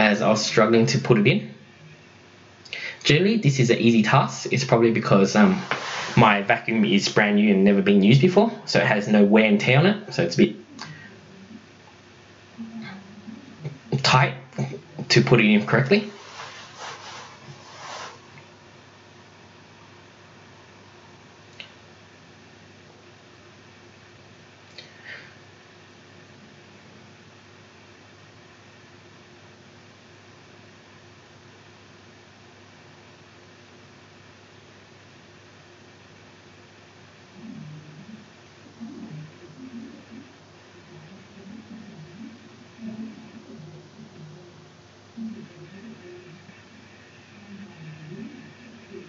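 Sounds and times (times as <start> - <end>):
faint steady hiss: 0.0 - 49.0
rustling swishes of sleeves: 5.4 - 6.3, 16.0 - 18.4.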